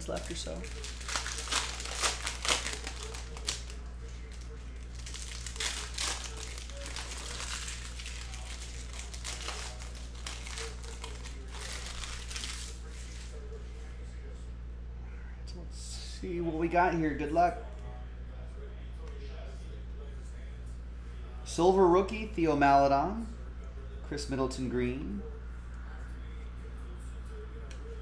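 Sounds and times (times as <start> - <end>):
cellophane wrapper crinkling: 0.0 - 13.4
steady low hum: 0.0 - 28.0.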